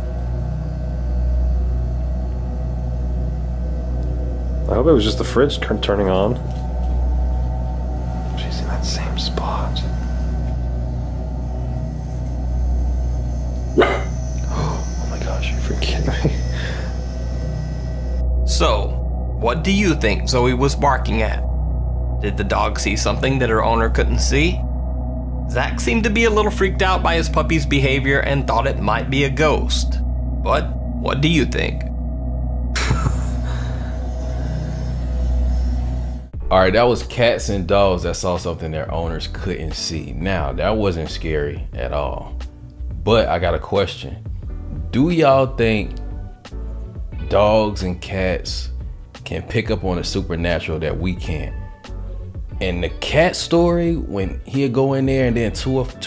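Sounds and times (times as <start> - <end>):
low electrical hum: 0.0 - 21.5, 32.8 - 39.6
eerie drone music: 0.0 - 56.0
sharp bark-like sound: 13.7 - 14.2.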